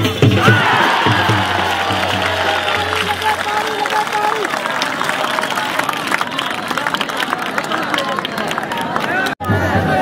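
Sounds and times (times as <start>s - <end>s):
drum beats: 0.0s - 4.0s
crowd noise: 0.0s - 10.0s
applause: 0.8s - 9.6s.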